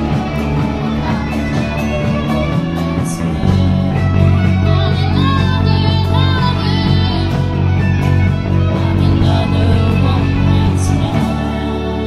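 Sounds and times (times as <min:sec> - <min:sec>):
live pop-rock band playing: 0:00.0 - 0:12.0.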